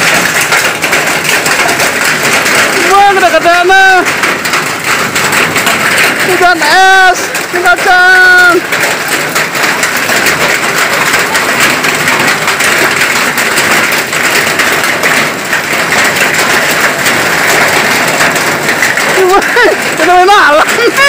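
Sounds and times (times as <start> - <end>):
hail and rain on roofs: 0.0 - 21.0.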